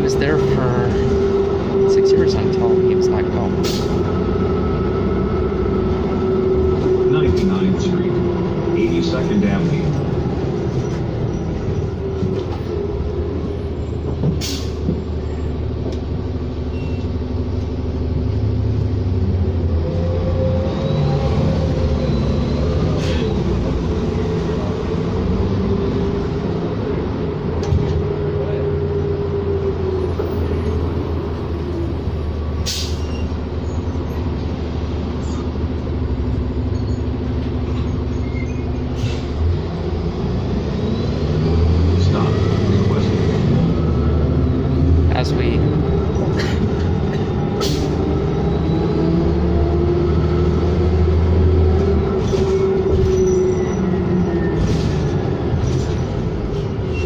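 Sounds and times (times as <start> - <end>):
bus engine and road rumble: 0.0 - 57.0.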